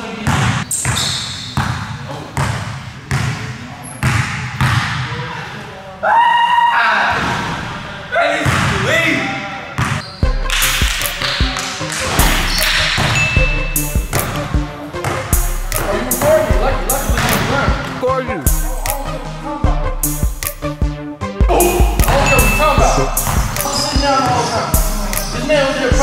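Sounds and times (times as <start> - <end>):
basketball bouncing on court: 0.2 - 5.1, 8.4 - 8.8, 9.8 - 10.2, 10.8 - 15.2, 17.1 - 17.9, 23.2 - 24.4
music: 9.9 - 26.0
voices: 15.5 - 19.8, 21.5 - 26.0.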